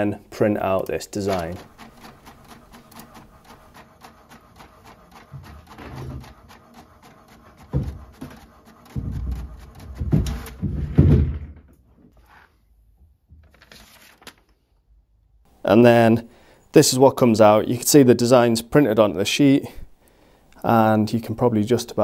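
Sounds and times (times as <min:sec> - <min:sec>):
inkjet printer clicking: 0:00.8 - 0:09.9
printer paper feed whirring: 0:01.3 - 0:10.6.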